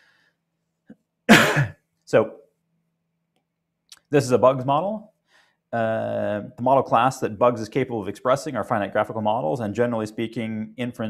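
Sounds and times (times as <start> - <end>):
man clearing his throat: 1.3 - 1.8.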